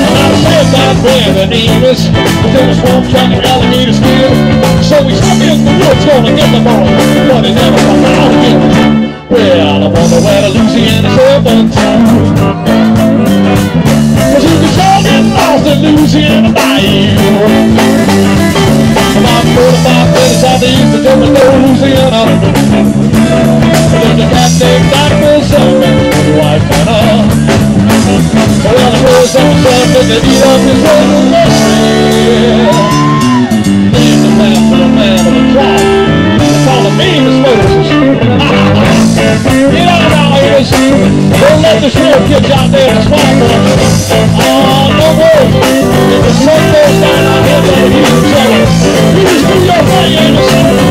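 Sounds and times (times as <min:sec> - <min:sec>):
bass guitar: 0:00.0 - 0:50.9
drum kit: 0:00.0 - 0:50.9
electric guitars: 0:00.0 - 0:50.9
live band playing: 0:00.0 - 0:50.9.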